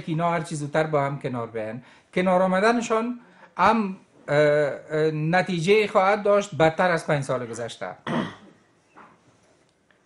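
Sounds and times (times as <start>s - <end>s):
man clearing throat: 8.0s - 8.6s.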